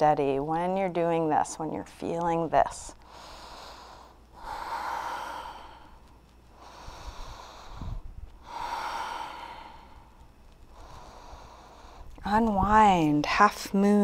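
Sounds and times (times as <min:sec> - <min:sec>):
woman breathing slowly: 0:03.0 - 0:12.2.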